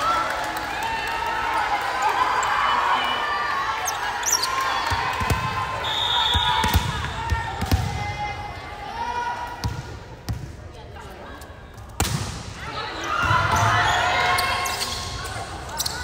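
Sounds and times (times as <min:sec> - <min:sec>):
referee whistle: 0:05.7 - 0:06.8.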